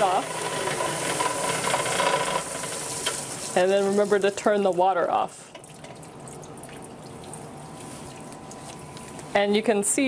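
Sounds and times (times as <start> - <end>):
faint steady hum: 3.5 - 10.0
water trickling and dripping: 5.5 - 9.3.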